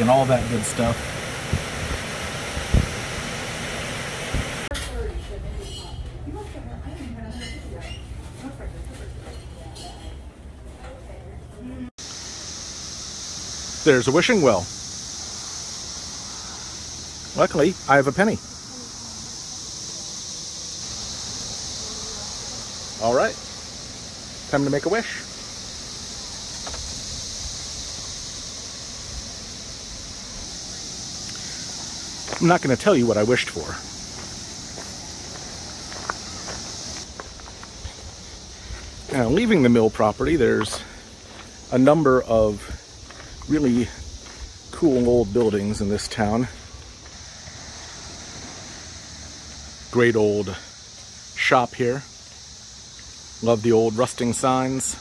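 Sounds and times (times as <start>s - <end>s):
cicadas droning: 0.0s - 55.0s.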